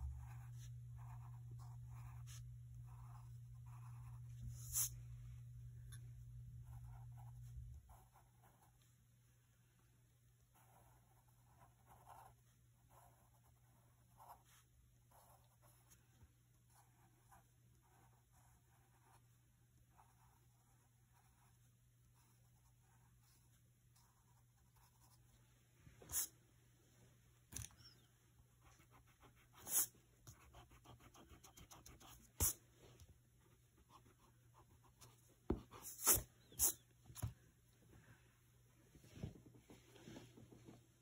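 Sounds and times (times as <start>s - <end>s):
pencil scratching on paper: 0.0s - 5.0s, 6.6s - 8.8s, 10.5s - 19.3s, 19.9s - 25.3s, 26.0s - 26.3s, 28.6s - 32.6s, 33.5s - 36.9s
low steady hum: 0.0s - 41.0s.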